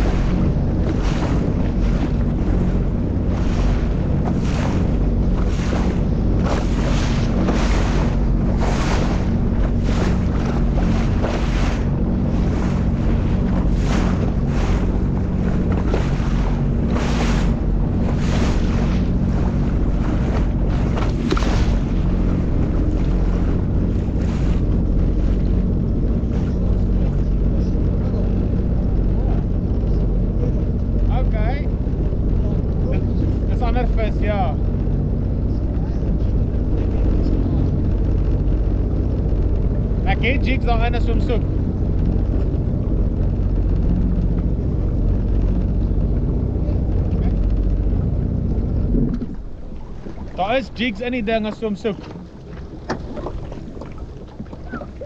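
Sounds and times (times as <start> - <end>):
motorboat engine running: 0.0 - 55.0
water splashing against hull: 0.0 - 55.0
wind on microphone: 0.0 - 55.0.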